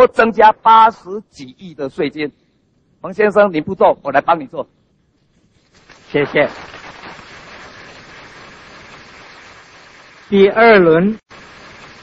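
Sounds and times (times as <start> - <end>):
steady recording hiss: 0.0 - 12.0.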